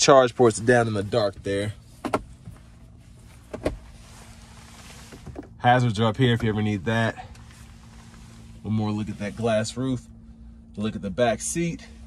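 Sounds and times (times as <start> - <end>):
armrest lid knock: 2.0 - 2.3.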